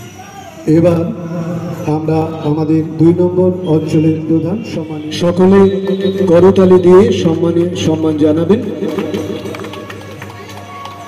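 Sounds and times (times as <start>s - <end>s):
amplified voice: 0.7s - 10.2s
audience clapping: 7.2s - 11.0s.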